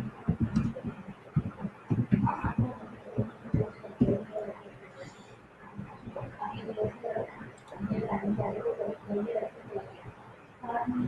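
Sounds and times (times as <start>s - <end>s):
muffled indistinct speech: 0.0s - 11.0s.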